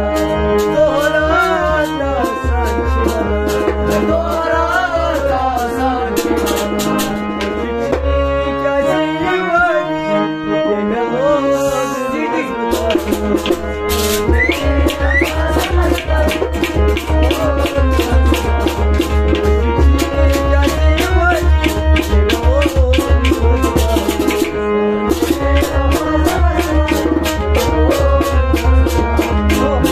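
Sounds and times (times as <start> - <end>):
man singing slow sad song: 0.0 - 6.5, 7.6 - 10.0, 10.7 - 13.4, 14.5 - 18.7, 22.3 - 24.5, 25.4 - 29.9
harmonium chords: 0.0 - 29.9.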